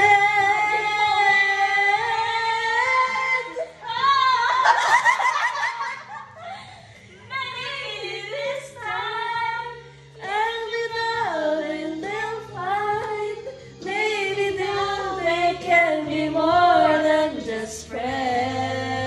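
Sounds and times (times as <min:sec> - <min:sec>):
woman singing pop melody: 0:00.0 - 0:05.0, 0:07.3 - 0:19.0
backing track: 0:00.0 - 0:19.0.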